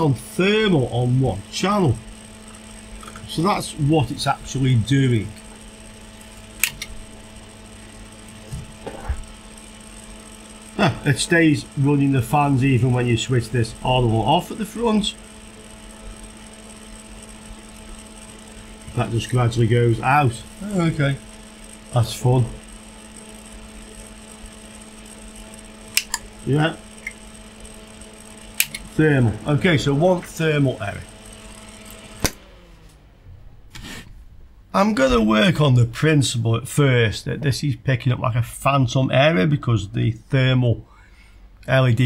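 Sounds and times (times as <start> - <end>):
cooling fans humming: 0.0 - 42.0
switch click: 6.6 - 7.0, 25.9 - 26.3, 28.6 - 28.9, 31.9 - 32.5.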